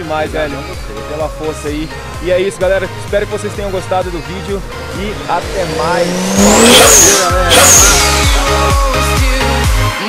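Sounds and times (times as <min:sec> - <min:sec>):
high sweeping sound: 0:02.6 - 0:08.8
electronic dance music beat: 0:04.4 - 0:08.9.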